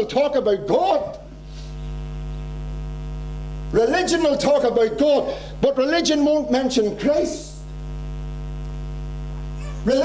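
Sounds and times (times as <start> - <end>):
man speaking: 0.0 - 1.3, 3.7 - 7.6
electrical mains hum: 0.0 - 10.0.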